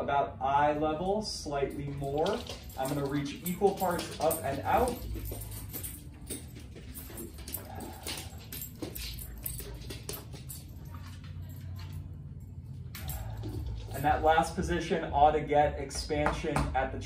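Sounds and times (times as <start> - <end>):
low hum: 0.0 - 15.9.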